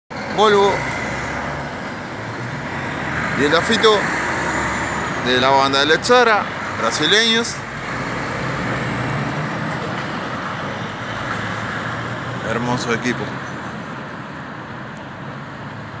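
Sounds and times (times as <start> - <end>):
diesel truck engine running: 0.1 - 14.8
road traffic noise: 0.1 - 16.0.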